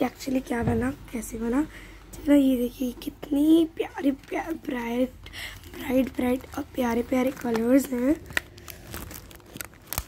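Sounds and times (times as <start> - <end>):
plastic film crinkling: 3.9 - 10.0.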